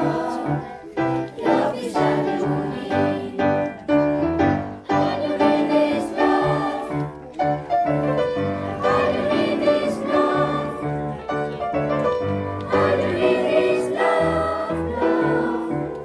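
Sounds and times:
children's choir singing: 0.0s - 16.0s
instrumental accompaniment: 0.0s - 16.0s.

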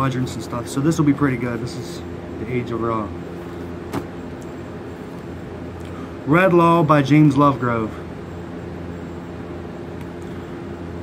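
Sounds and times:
low hum of motor: 0.0s - 11.0s.

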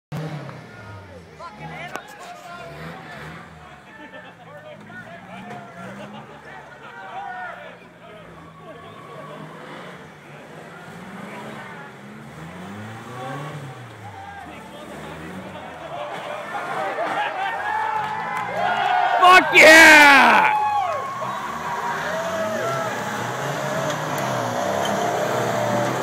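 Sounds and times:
truck engines revving: 0.1s - 26.0s
spectators talking and calling out: 0.6s - 12.2s, 12.8s - 26.0s.

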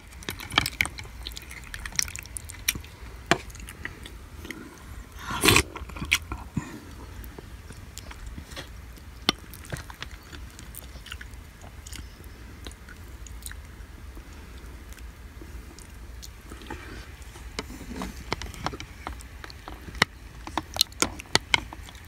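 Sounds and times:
person chewing: 0.0s - 22.0s.

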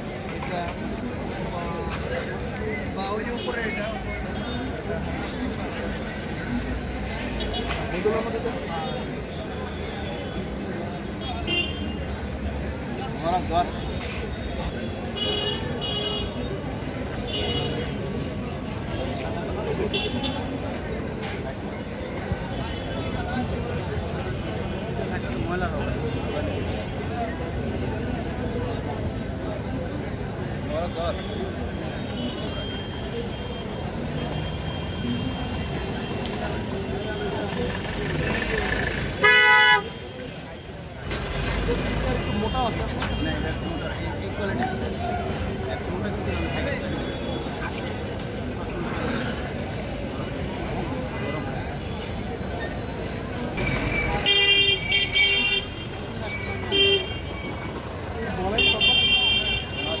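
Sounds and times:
busy city street traffic: 0.0s - 60.0s
faint voices: 0.0s - 60.0s
vehicle horns honking: 39.2s - 40.1s.

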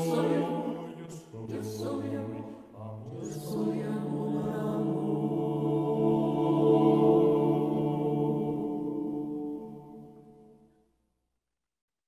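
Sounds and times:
mixed choir singing a cappella: 0.0s - 10.6s.

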